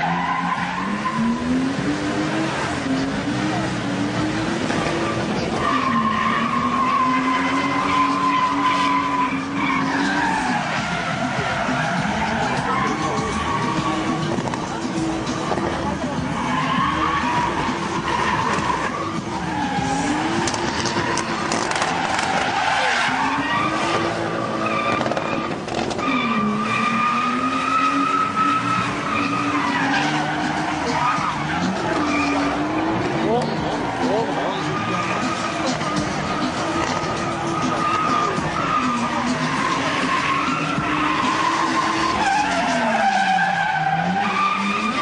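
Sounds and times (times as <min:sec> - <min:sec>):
car engine revving high: 0:00.0 - 0:45.0
tyres squealing: 0:00.0 - 0:45.0.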